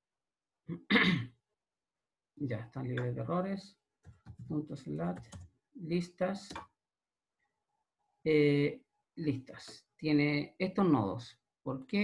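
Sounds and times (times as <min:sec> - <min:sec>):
man clearing his throat: 0:00.7 - 0:01.3.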